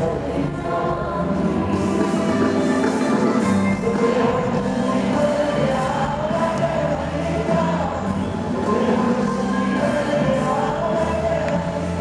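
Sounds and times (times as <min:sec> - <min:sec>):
live band through pa: 0:00.0 - 0:12.0
several voices singing: 0:00.0 - 0:12.0.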